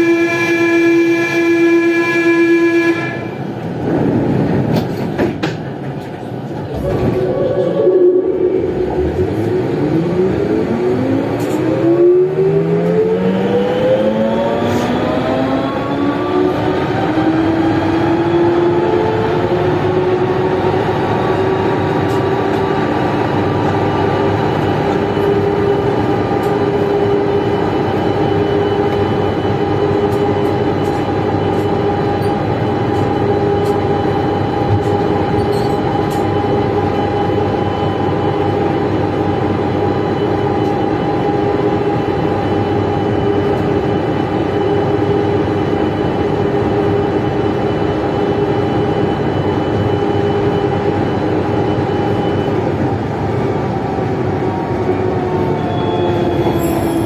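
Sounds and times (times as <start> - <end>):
metro train motor whine: 0.0 - 57.0
train running noise: 0.0 - 57.0.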